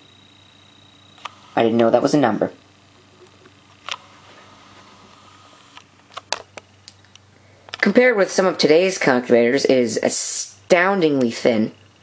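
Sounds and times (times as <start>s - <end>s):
faint steady whir: 0.0s - 12.0s.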